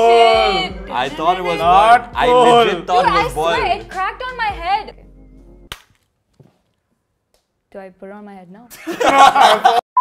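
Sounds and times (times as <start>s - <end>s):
sharp crack: 5.7s - 6.1s.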